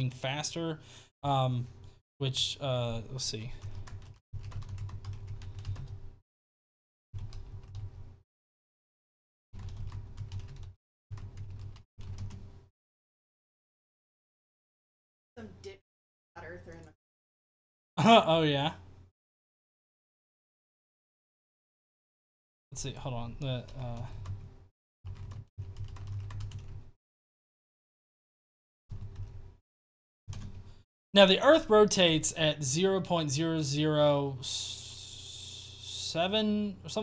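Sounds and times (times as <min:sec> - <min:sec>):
computer keyboard typing: 0:03.6 - 0:06.0, 0:07.2 - 0:07.9, 0:09.6 - 0:12.4, 0:25.1 - 0:26.8, 0:28.9 - 0:29.4, 0:30.3 - 0:30.6.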